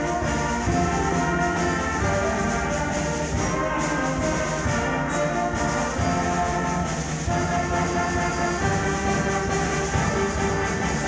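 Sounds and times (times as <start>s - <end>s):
concert band playing held chords: 0.0s - 11.0s.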